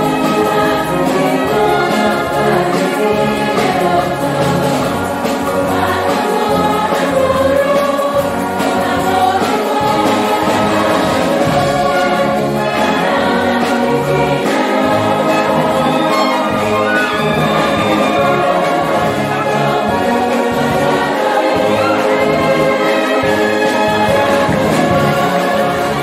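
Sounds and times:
brass band playing: 0.0 - 26.0
mixed choir singing: 0.0 - 26.0.

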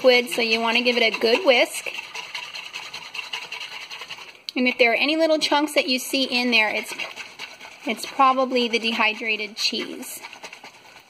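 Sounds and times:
whisk swishing in a bowl: 0.0 - 11.0.

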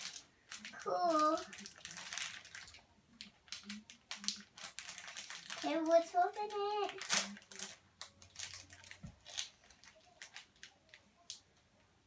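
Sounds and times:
wrapper crinkling torn open: 0.0 - 11.4.

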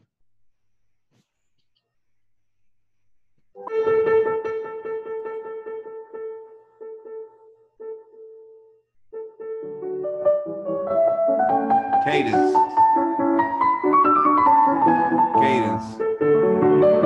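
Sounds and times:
solo piano classical passage: 3.5 - 17.0.

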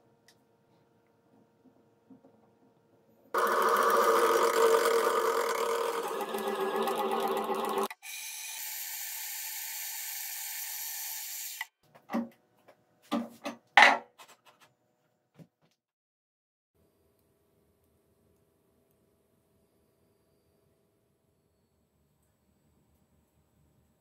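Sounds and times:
milling machine drilling steel: 3.4 - 11.7.

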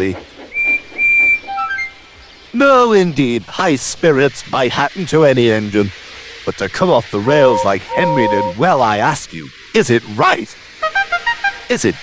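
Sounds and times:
steam locomotive whistle: 7.2 - 8.7.

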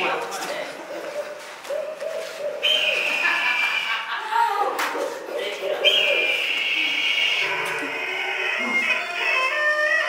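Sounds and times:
shrill whistle-like tone: 2.6 - 3.2.

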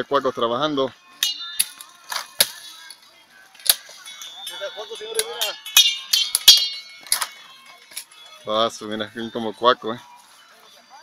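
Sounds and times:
machete chopping sugarcane: 1.2 - 2.7, 3.6 - 4.0.

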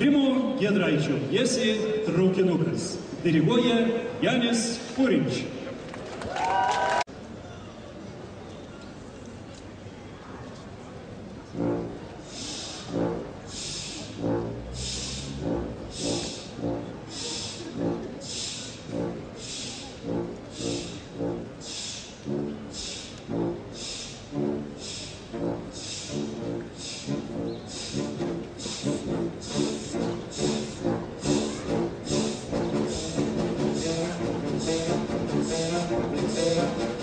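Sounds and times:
loud brass chords: 11.5 - 37.0.

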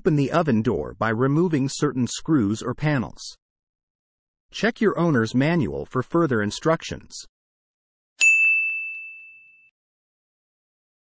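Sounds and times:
bright bell-like ding: 8.2 - 9.7.

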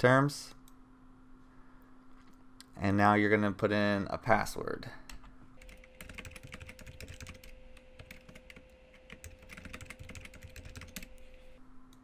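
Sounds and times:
keyboard typing clicks: 5.6 - 12.0.

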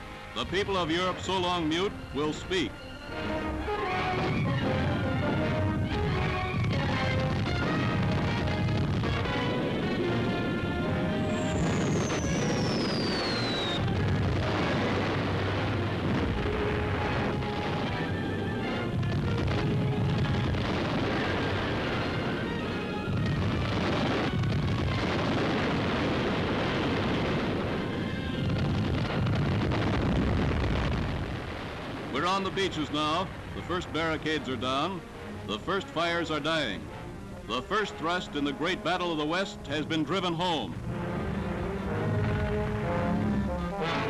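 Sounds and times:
music: 0.0 - 44.0
explosions: 3.7 - 35.0, 41.8 - 44.0
gunfire: 6.6 - 9.6
falling whistle: 11.2 - 13.9.

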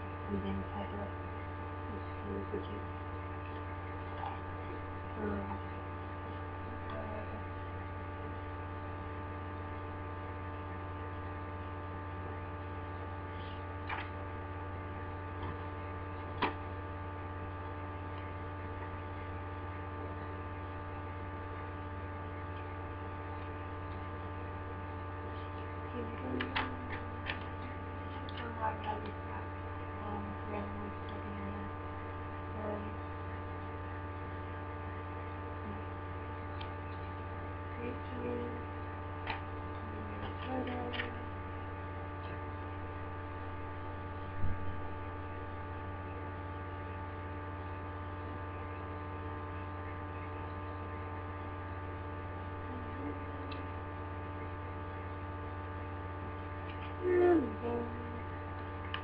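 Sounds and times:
electrical hum: 0.0 - 59.0.

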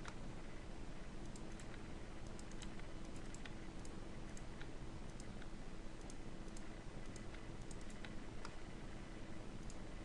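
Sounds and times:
low hum and hiss: 0.0 - 10.0
keyboard and mouse clicking: 1.2 - 8.6, 9.6 - 9.8.

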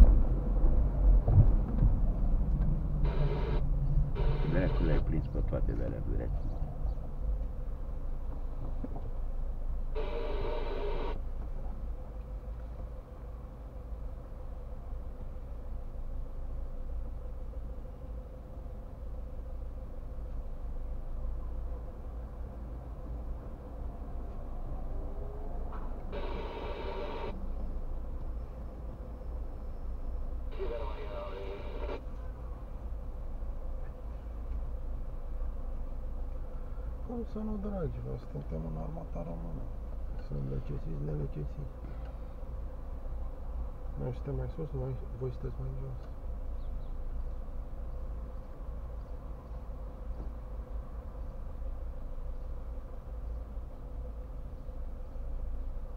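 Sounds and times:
low rumble inside car cabin: 0.0 - 22.5, 23.1 - 49.0
faint steady hum: 2.2 - 55.9.

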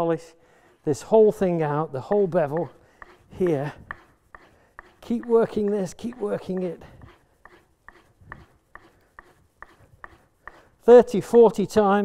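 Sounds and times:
blade stroking on strop ticking: 1.2 - 11.8.

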